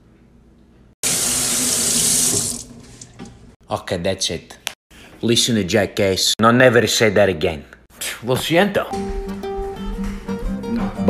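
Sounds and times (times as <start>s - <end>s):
kitchen faucet running into sink: 1.0s - 3.4s.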